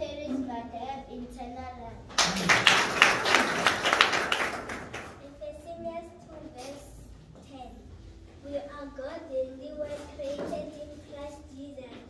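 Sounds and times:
group of people clapping: 0:02.1 - 0:05.2.

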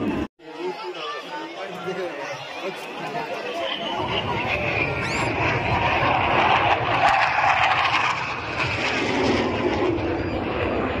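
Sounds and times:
jet aircraft flying past: 0:03.5 - 0:11.0.

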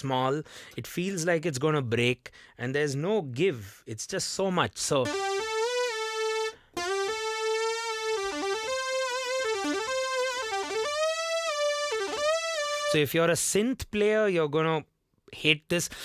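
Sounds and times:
synth lead melody with pitch bends: 0:05.1 - 0:13.0.

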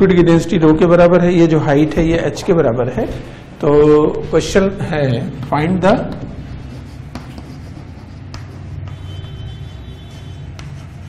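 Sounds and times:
low room hum: 0:00.0 - 0:11.0
chalk tapping on blackboard: 0:05.4 - 0:11.0
chalk scratching on blackboard: 0:06.1 - 0:11.0.

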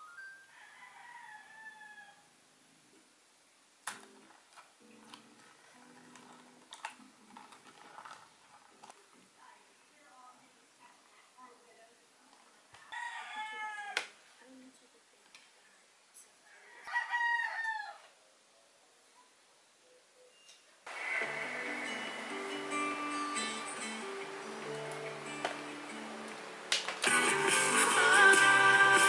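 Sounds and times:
music: 0:00.0 - 0:00.5, 0:03.9 - 0:08.0, 0:20.9 - 0:29.0
rooster crowing: 0:00.4 - 0:02.4, 0:12.8 - 0:14.2, 0:16.4 - 0:18.2.

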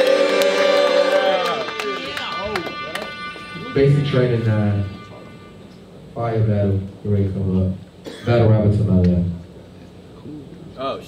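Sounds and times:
person holding a long note: 0:00.0 - 0:07.1.

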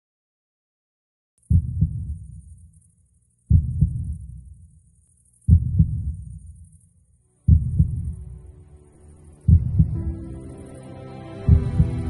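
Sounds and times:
heartbeat double thump: 0:01.5 - 0:02.4, 0:03.5 - 0:04.5, 0:05.5 - 0:06.5, 0:07.5 - 0:08.3, 0:09.5 - 0:10.1, 0:11.5 - 0:12.0
faint music: 0:07.3 - 0:12.0.

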